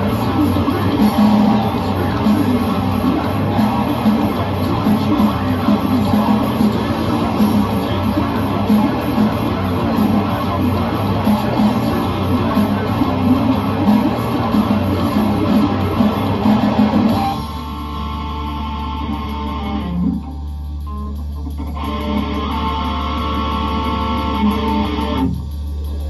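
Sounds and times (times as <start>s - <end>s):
drums and bass backing: 0.0s - 26.0s
electric guitars playing rock riff: 0.0s - 26.0s.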